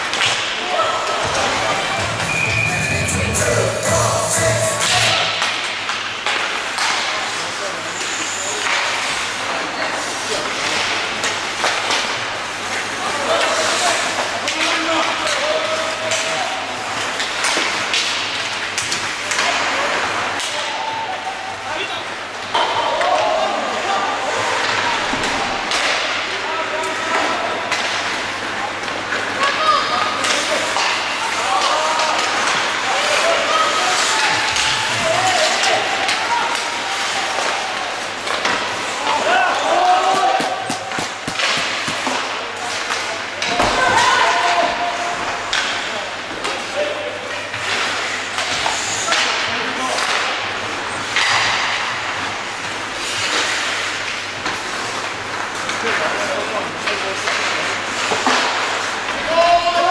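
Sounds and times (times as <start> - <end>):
people shouting: 0.6 - 5.5, 31.2 - 38.2, 38.9 - 41.9, 43.5 - 45.4
sticks clacking on puck: 28.8 - 43.8, 53.0 - 59.9.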